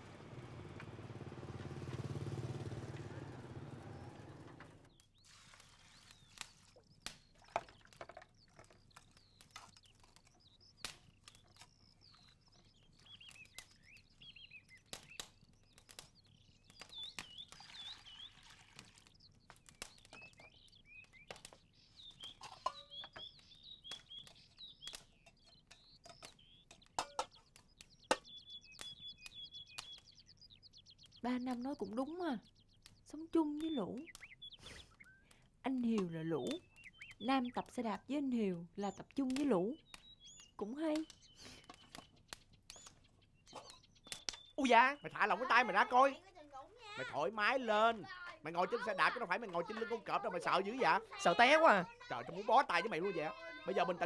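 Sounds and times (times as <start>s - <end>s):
motor scooter engine rumble: 0.0s - 5.0s
small birds chirping: 0.0s - 54.0s
pot and bowls clicking: 25.0s - 28.3s.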